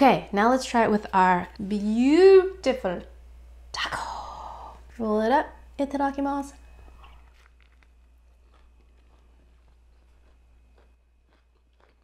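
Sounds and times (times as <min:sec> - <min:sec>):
low steady hum: 0:00.0 - 0:12.0
soft crunches of chewing: 0:06.8 - 0:12.0.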